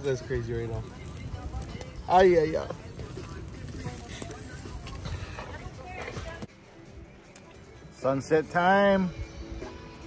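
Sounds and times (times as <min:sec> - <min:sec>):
meat sizzling on grill: 0:00.0 - 0:06.5
faint music: 0:00.0 - 0:10.0
fire crackles: 0:00.0 - 0:10.0.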